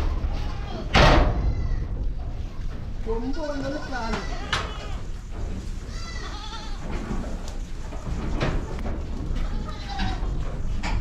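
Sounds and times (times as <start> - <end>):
goats bleating: 3.3 - 5.1, 5.8 - 7.0, 9.3 - 10.4.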